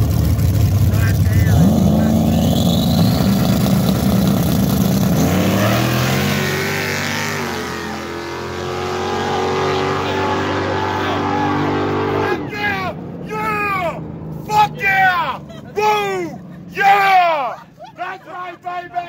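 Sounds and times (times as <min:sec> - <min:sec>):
race car engine revving: 0:00.0 - 0:14.5.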